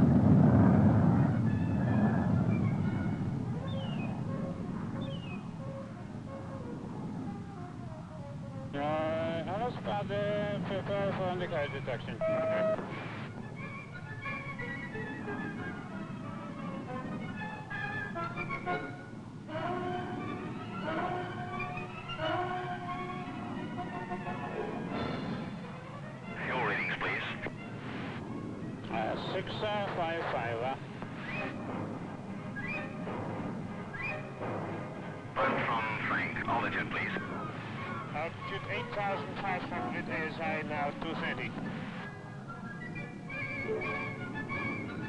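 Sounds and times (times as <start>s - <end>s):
film score music: 0.0s - 45.0s
garbled radio voice: 26.4s - 27.5s, 35.4s - 37.3s.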